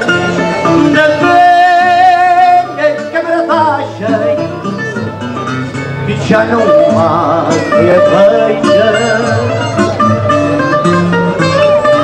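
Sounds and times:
guitars playing: 0.0 - 12.0
man singing with vibrato: 0.0 - 12.0.

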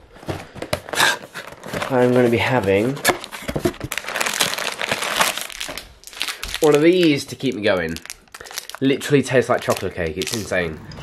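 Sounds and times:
wrapper crinkling: 0.9 - 10.7.

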